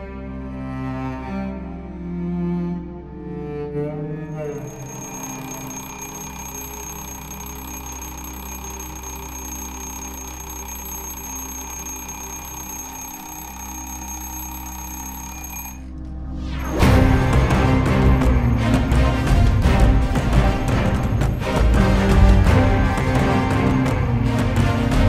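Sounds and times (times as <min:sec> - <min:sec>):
soft background music: 0:00.0 - 0:25.0
alarm clock ringing: 0:04.4 - 0:16.0
loud music: 0:16.6 - 0:25.0.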